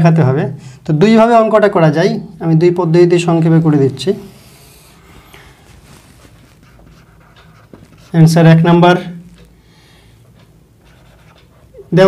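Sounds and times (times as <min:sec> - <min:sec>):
marker rubbing on whiteboard: 0:03.9 - 0:08.8, 0:10.8 - 0:12.0
small scuffs and clicks: 0:05.3 - 0:08.2.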